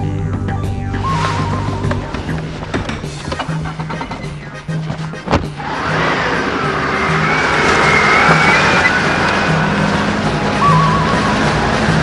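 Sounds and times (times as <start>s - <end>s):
background music: 0.0s - 12.0s
car engine and road noise: 0.2s - 12.0s.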